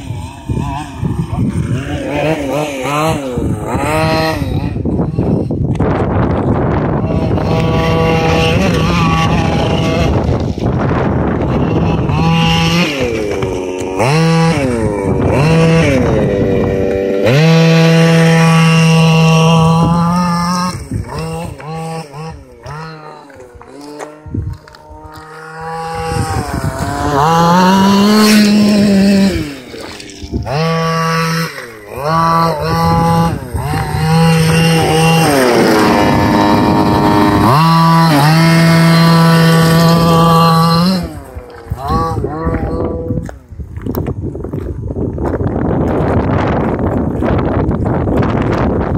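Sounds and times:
model buggy engine revving: 0:00.0 - 0:43.4.

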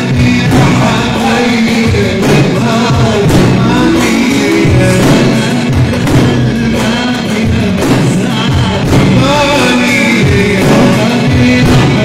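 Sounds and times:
bass drum beaten with stick: 0:00.0 - 0:12.0
person singing: 0:00.0 - 0:12.0
sustained melody: 0:00.2 - 0:12.0.

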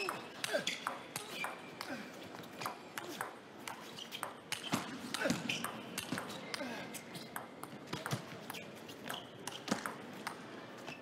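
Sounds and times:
shoes squeaking on floor: 0:00.0 - 0:09.8, 0:10.8 - 0:11.0.

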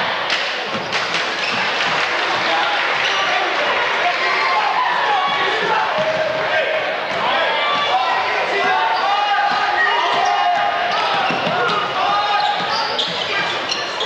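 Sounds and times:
murmur of spectators' voices: 0:00.0 - 0:14.0
players' footsteps: 0:00.3 - 0:14.0.

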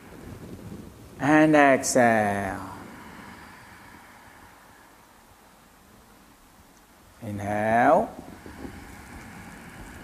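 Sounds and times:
slow breath drawn in: 0:00.0 - 0:00.9, 0:02.5 - 0:05.9, 0:08.2 - 0:10.0.

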